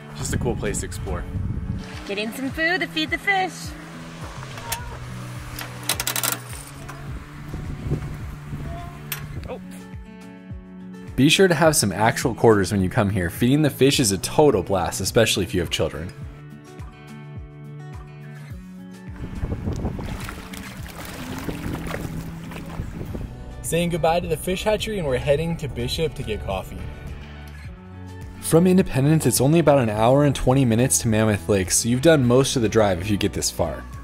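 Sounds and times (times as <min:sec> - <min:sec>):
background music with low notes: 0:00.0 - 0:34.0
metal mechanism clicking and rattling: 0:05.5 - 0:06.9
fish splashing at water surface: 0:19.7 - 0:23.0.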